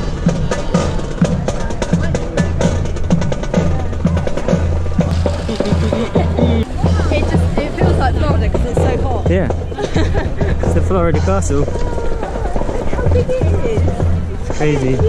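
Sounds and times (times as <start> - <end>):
marching band playing: 0.0 - 15.0.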